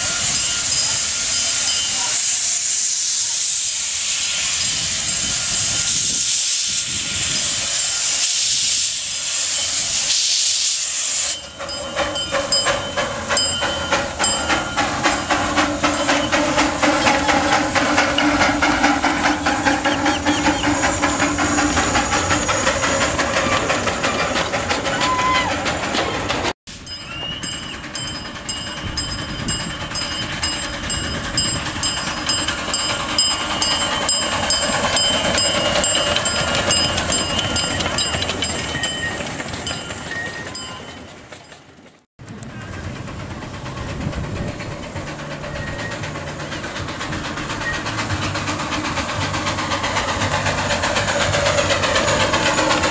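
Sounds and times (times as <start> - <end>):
steam hissing: 0.0 - 25.9, 26.7 - 41.1, 42.5 - 52.9
steam locomotive exhaust chuffing: 0.0 - 52.9
wheels on rails: 0.0 - 52.9.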